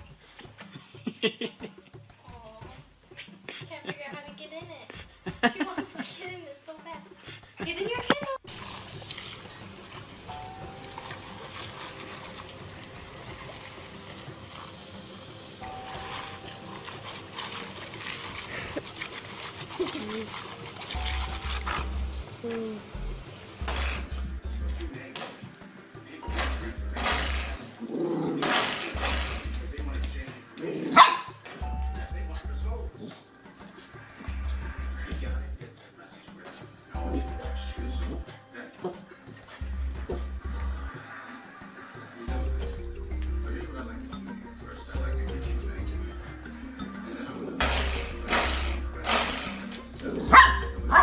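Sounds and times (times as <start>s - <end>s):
puppy growling: 27.0s - 29.4s
puppy barking: 30.9s - 31.4s, 50.2s - 51.0s
short noisy bursts: 47.6s - 49.6s.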